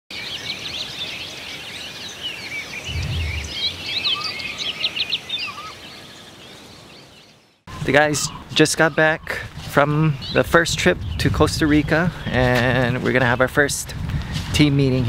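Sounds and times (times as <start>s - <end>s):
many birds chirping and whistling: 0.2s - 13.8s
short low rumble: 2.9s - 4.3s.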